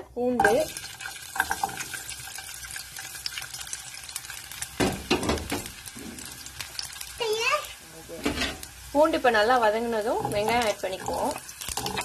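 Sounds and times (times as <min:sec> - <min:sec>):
garlic sizzling in hot oil: 0:00.2 - 0:12.0.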